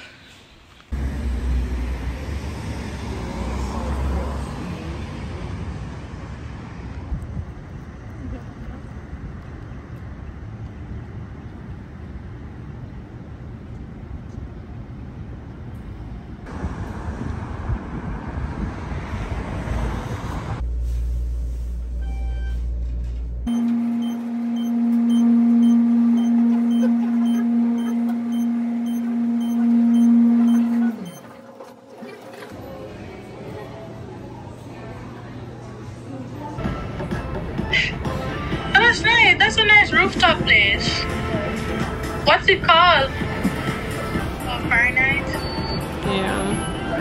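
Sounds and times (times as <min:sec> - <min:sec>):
city street traffic: 0:00.0 - 0:47.0
elevator hum: 0:22.0 - 0:37.4.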